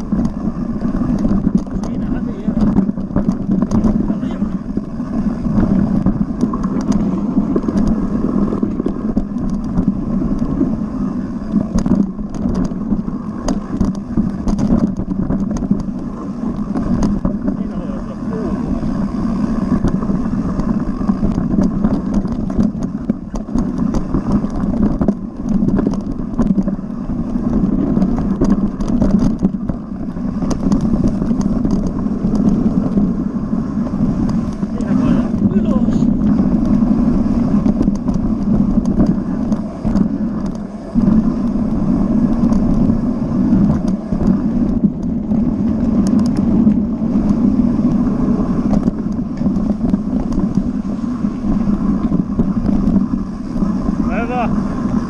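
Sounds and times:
bike knocking and rattling: 0.0s - 55.0s
wind and tyre noise: 0.0s - 55.0s.

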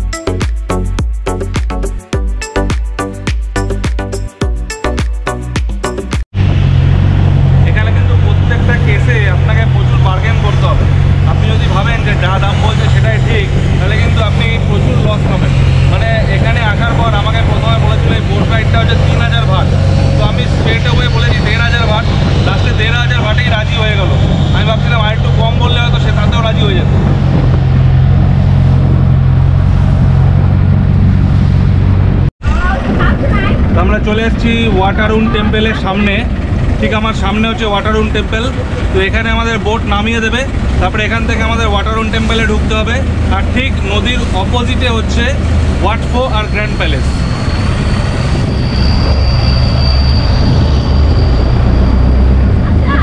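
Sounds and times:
boat engine droning: 6.3s - 53.0s.

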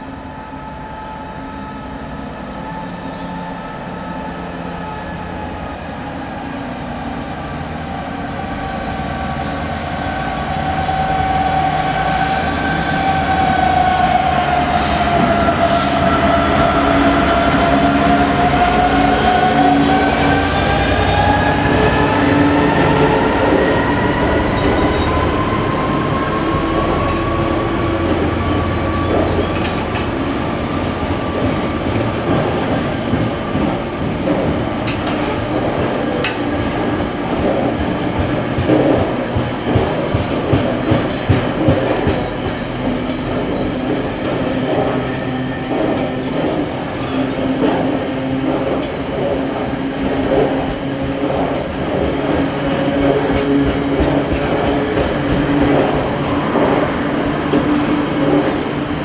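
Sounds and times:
diesel locomotive passing: 0.0s - 59.0s.

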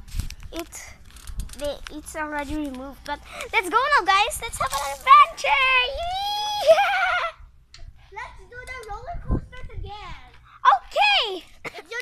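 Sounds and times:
girl's long high cry: 6.2s - 7.4s.

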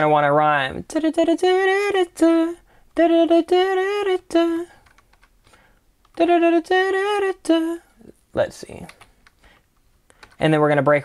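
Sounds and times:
man vocalising wordless melody: 0.0s - 4.8s, 6.2s - 8.9s
keyboard typing clicks: 4.8s - 5.4s, 10.1s - 10.5s.

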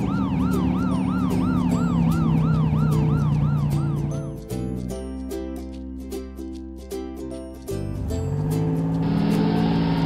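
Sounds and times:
cartoon police siren wailing: 0.0s - 4.2s
light background music: 0.0s - 10.0s.

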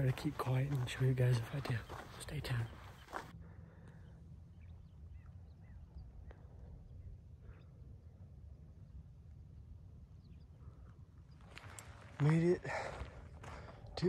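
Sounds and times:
low steady rumble: 2.2s - 11.9s.

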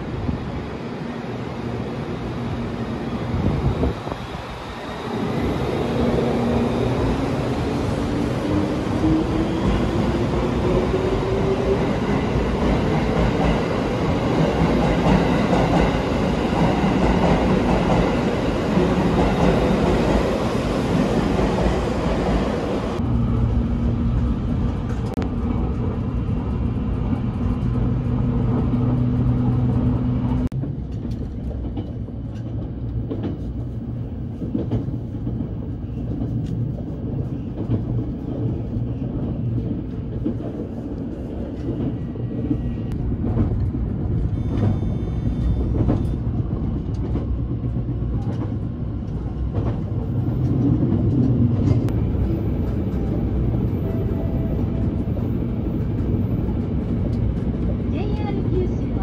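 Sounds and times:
train running noise: 0.0s - 59.0s
low hum inside train: 21.4s - 59.0s.

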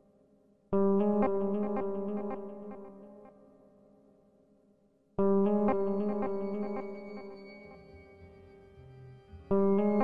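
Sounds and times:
sustained chord with plucked notes: 5.2s - 10.0s.

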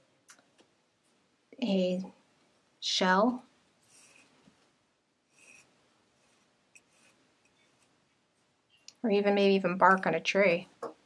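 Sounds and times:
yarn rustling through loom: 3.3s - 10.6s.

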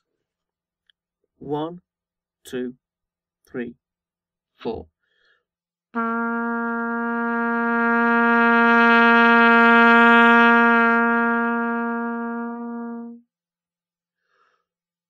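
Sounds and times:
trumpet long low note: 6.0s - 13.2s.

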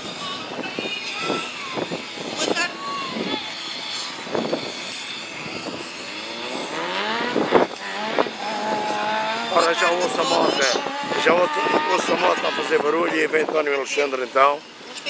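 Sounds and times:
crowd voices: 0.0s - 15.0s
vehicle engine revving: 0.0s - 15.0s.

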